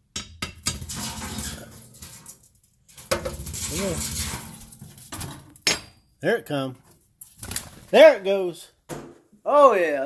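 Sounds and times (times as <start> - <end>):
metal scraping rattle: 0.6 - 5.7.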